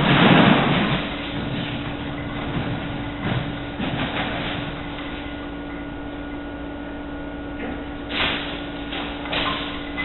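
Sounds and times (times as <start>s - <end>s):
steady machine hum: 0.0s - 10.0s.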